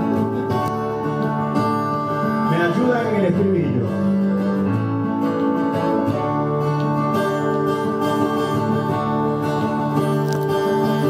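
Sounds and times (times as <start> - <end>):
acoustic guitar playing chords: 0.0 - 11.0.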